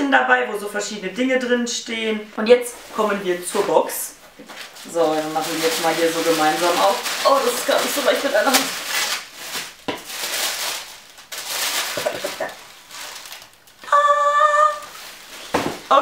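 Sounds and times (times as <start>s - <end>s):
paper wrapping rustling: 2.9s - 16.0s
short held vocal note: 13.8s - 15.0s.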